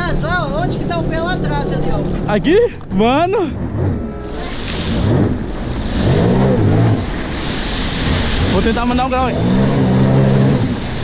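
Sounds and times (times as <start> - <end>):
jet ski engine revving: 0.0 - 2.4, 3.1 - 11.0
spray rushing: 4.3 - 11.0.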